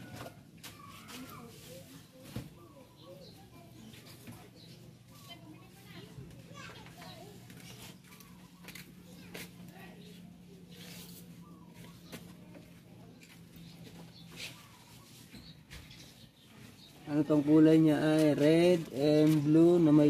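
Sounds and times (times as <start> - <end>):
distant children playing: 0.0 - 20.0.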